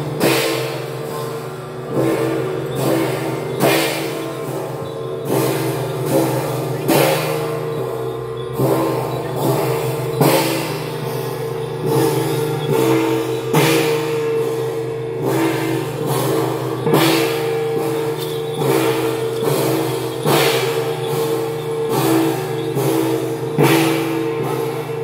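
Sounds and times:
cymbal crashes: 0.0 - 25.0
gong crashes: 0.1 - 25.0
held melody: 1.8 - 25.0.

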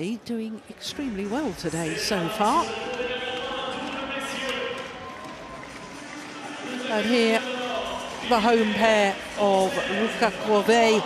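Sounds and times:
crowd murmur: 0.6 - 11.0
faint shuttle and shoe sounds: 2.6 - 10.4.

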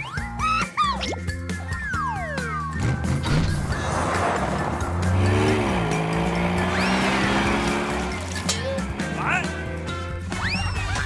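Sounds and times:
background music: 0.0 - 11.0
cartoon vehicle engine: 0.1 - 11.0.

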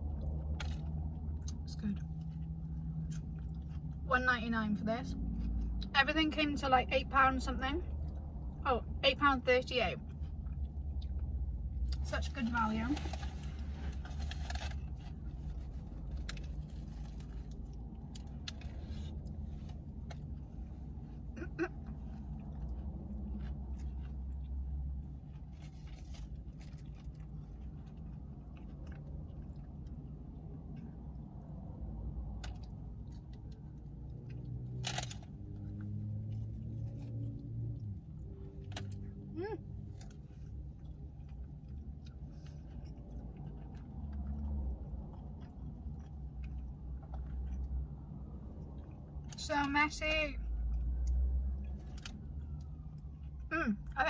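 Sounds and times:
chewing and crunching taco: 0.0 - 54.0
low steady hum: 0.0 - 54.0.

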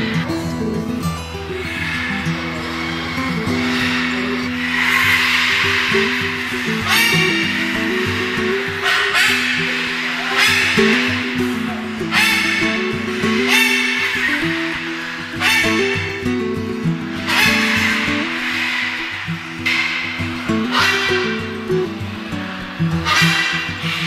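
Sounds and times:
background music held notes: 0.0 - 24.0
macaw screeching: 0.0 - 24.0.

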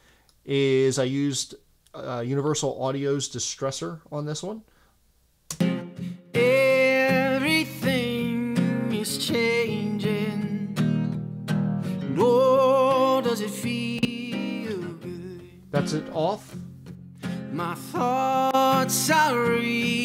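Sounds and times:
acoustic guitar: 5.5 - 20.0
man singing: 6.3 - 11.0, 12.0 - 16.5, 17.3 - 20.0.

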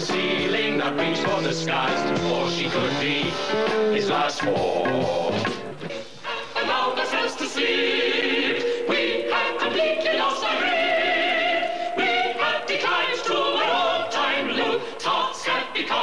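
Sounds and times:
musical-theatre music with choir: 0.0 - 16.0.

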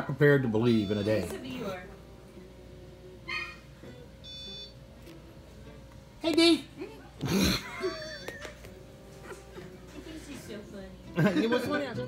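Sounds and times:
steady electronic beep: 4.2 - 4.8.

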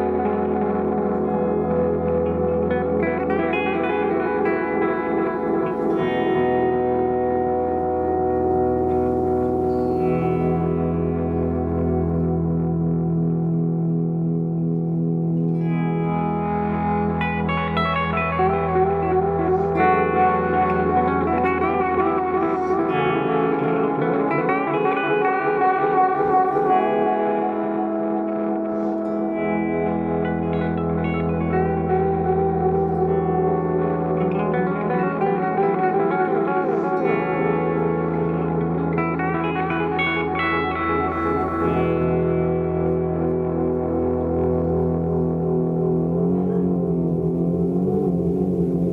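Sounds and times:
electric guitar with delay echoes: 0.0 - 48.9
low held note: 0.0 - 48.9.

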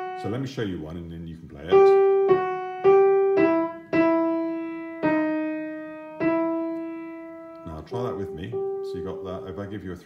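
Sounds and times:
slow piano melody: 0.0 - 0.5, 1.7 - 9.8.

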